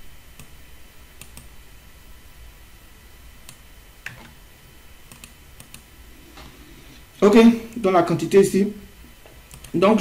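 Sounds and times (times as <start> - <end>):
low steady hum: 0.0 - 10.0
computer input clicks: 5.1 - 5.8.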